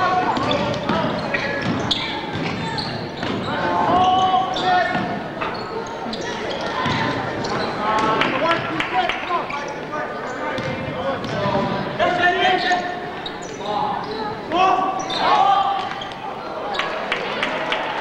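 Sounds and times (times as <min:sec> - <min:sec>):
voices echoing in gym: 0:00.0 - 0:18.0
short squeaks: 0:01.2 - 0:04.8.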